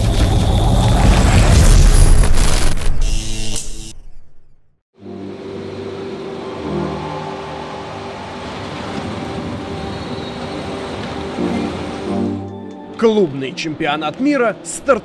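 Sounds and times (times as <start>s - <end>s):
bus engine humming: 5.1s - 13.0s.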